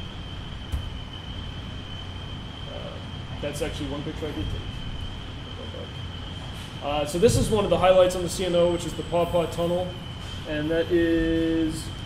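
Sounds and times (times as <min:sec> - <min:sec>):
steady low hum: 0:00.0 - 0:12.0
thin high whine: 0:00.0 - 0:12.0.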